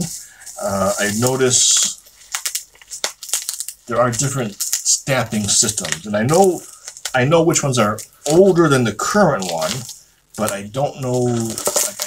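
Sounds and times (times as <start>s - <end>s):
packaging crinkling: 0.0s - 12.0s.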